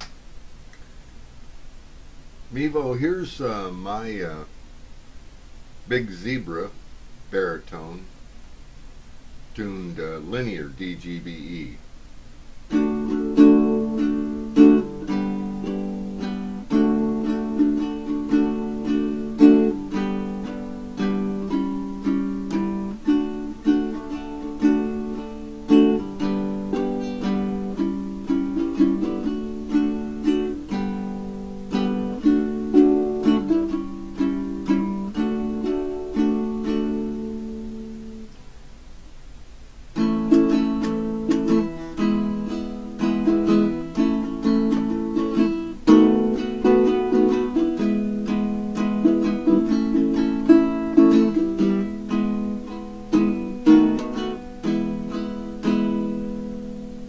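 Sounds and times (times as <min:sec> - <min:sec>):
ukulele strummed chords: 0:09.6 - 0:11.8, 0:12.7 - 0:38.4, 0:39.9 - 0:57.0.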